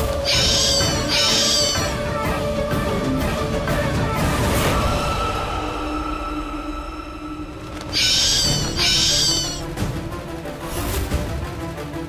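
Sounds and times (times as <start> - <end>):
soft background music: 0.0 - 12.0
shrill bat screeches: 0.2 - 2.0, 7.9 - 9.6.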